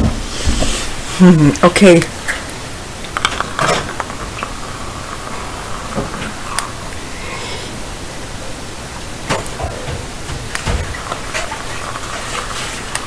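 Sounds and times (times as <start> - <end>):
static hiss: 0.0 - 13.0.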